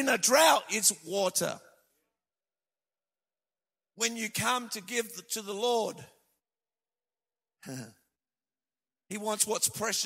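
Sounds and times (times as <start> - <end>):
man preaching: 0.0 - 1.9, 4.0 - 6.3, 9.1 - 10.0
man sighing: 7.6 - 8.0.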